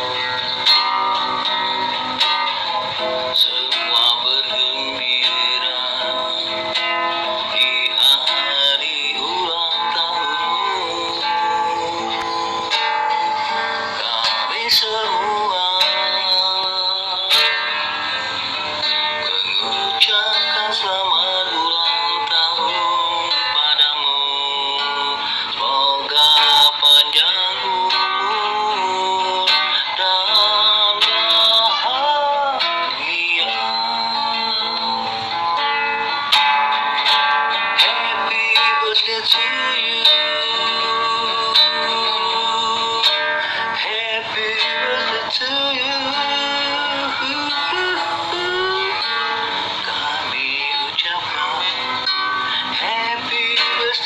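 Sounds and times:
acoustic guitar strumming: 0.0s - 54.0s
man singing: 0.0s - 54.0s.

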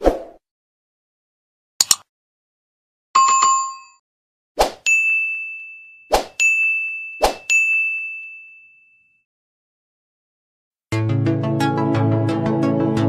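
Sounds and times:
bright ringing ding: 4.9s - 9.2s.

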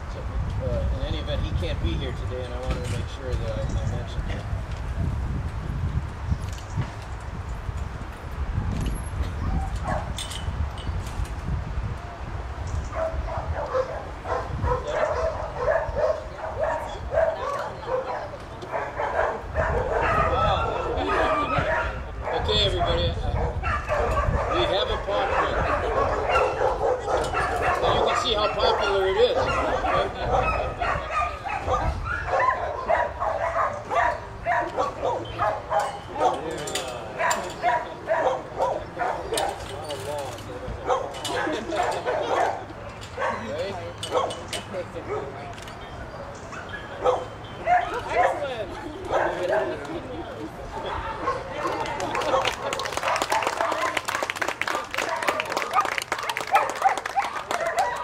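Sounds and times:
murmur of people talking: 11.8s - 58.0s.

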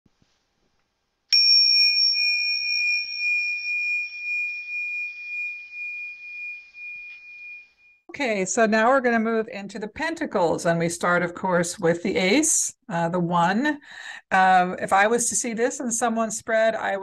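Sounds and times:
high-pitched bell ringing: 1.3s - 8.1s.

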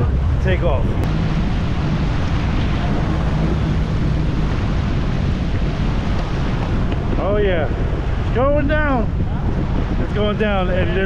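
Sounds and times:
jet skis running: 0.0s - 11.0s
rushing water: 0.0s - 11.0s
wind noise on microphone: 0.0s - 11.0s.

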